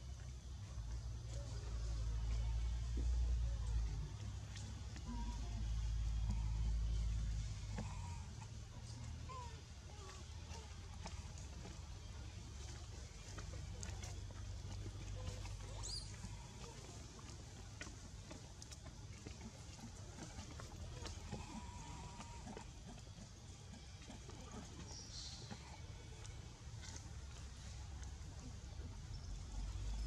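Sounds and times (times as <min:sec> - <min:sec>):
low outdoor rumble: 0:00.0 - 0:30.0
thin faint call: 0:01.2 - 0:30.0.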